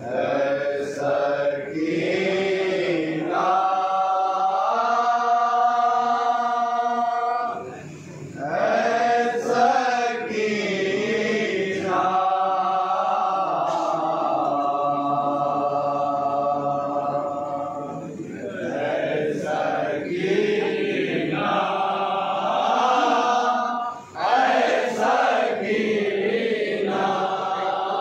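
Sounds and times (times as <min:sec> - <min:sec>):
men chanting in unison: 0:00.0 - 0:28.0.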